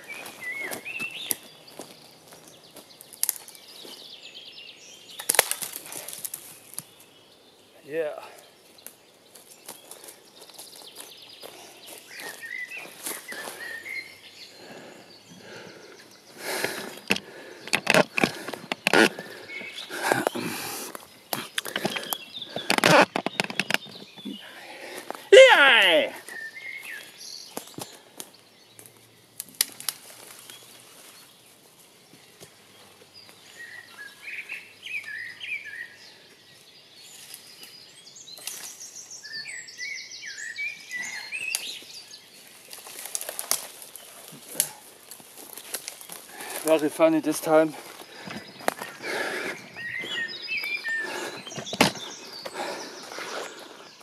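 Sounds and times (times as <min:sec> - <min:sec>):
crunching on forest floor: 0:00.0 - 0:07.1, 0:08.2 - 0:35.8, 0:40.5 - 0:54.0
small birds chirping: 0:00.0 - 0:54.0.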